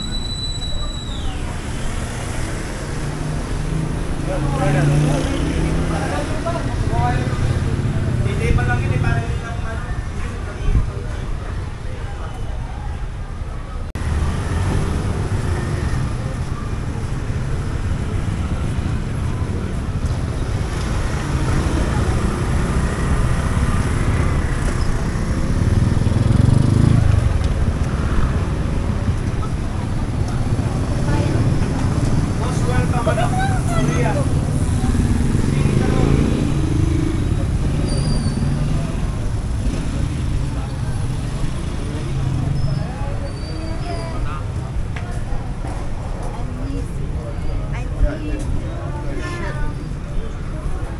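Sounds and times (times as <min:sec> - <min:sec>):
passers-by chattering: 0:00.0 - 0:50.9
motorbikes and cars passing: 0:01.1 - 0:50.9.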